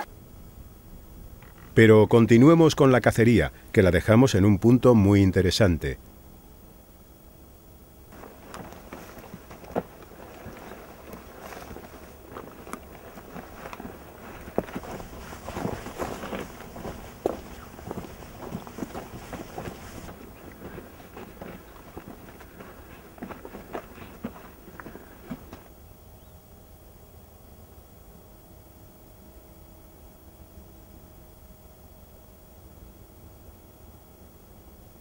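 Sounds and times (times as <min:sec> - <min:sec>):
boots crunching on loose stones: 0:08.1 - 0:25.7.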